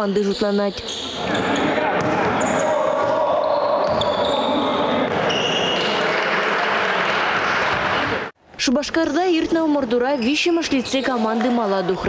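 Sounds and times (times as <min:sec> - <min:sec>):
din of players' voices: 0:00.0 - 0:08.3
basketball bouncing on court: 0:03.0 - 0:04.2.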